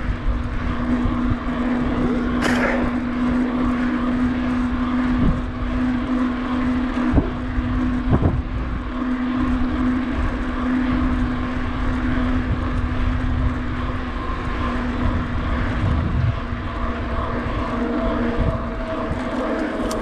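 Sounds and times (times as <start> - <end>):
bicycle tyres rolling on asphalt: 0.0 - 20.0
low drone: 0.0 - 20.0
wind on microphone: 0.0 - 20.0.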